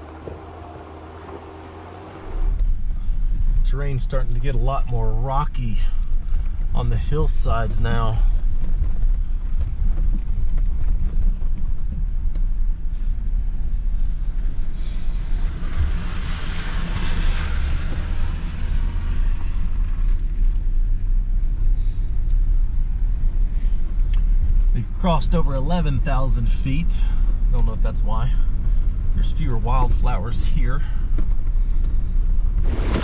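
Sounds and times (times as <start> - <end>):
engine and drivetrain rumble: 0.0 - 33.0.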